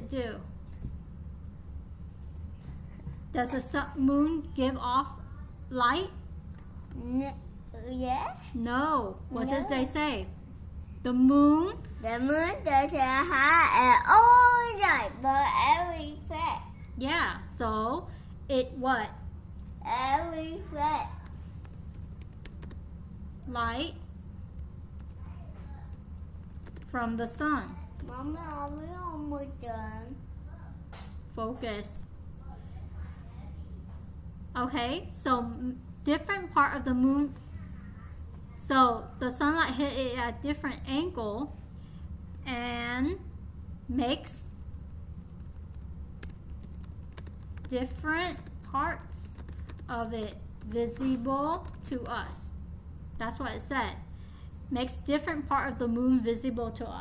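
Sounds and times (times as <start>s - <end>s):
steady low hum: 0.0s - 57.0s
computer keyboard key clicks: 44.6s - 47.7s, 48.3s - 52.1s.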